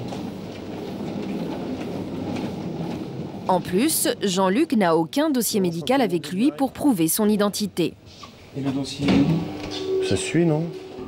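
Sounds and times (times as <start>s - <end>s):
hospital bed wheels rumbling: 0.0s - 7.8s.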